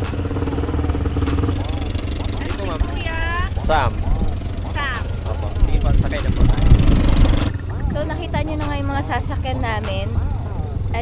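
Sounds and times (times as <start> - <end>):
small engine idling: 0.0 - 9.6.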